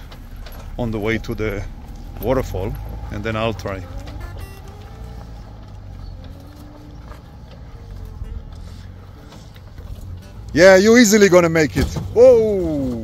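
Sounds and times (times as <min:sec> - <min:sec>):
off-road vehicle engine rumble: 0:00.0 - 0:13.0.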